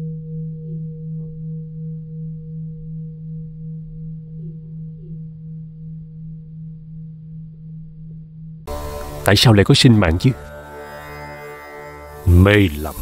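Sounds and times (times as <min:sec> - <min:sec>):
singing bowl ringing: 0:00.0 - 0:06.8, 0:08.7 - 0:13.0.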